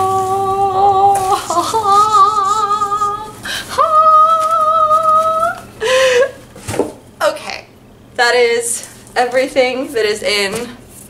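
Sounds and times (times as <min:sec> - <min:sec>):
woman singing wordless tune: 0:00.0 - 0:06.0.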